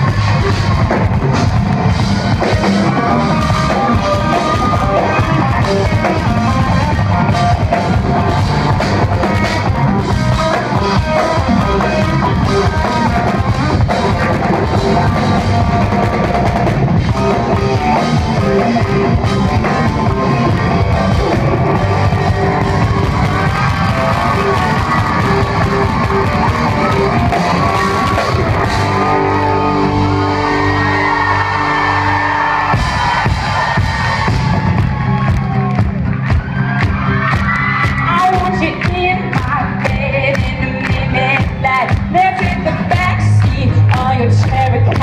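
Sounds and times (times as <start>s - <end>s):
drum kit: 0.0s - 45.0s
electric guitar: 0.0s - 45.0s
live rock band playing: 0.0s - 45.0s.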